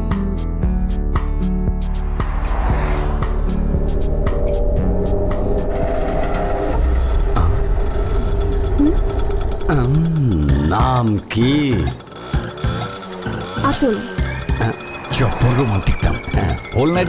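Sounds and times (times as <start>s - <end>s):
film background music: 0.0s - 17.0s
street traffic noise: 1.8s - 17.0s.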